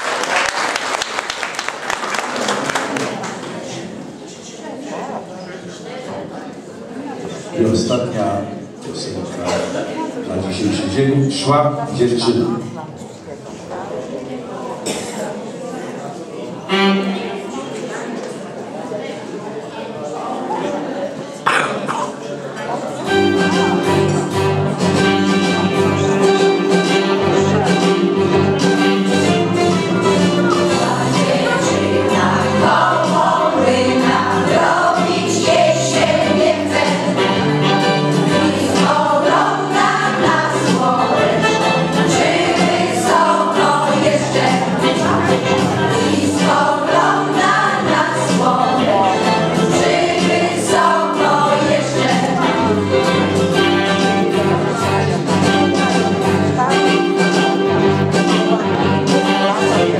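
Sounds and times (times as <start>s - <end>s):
murmur of voices: 0.0s - 59.9s
women's choir singing folk song: 30.1s - 53.4s.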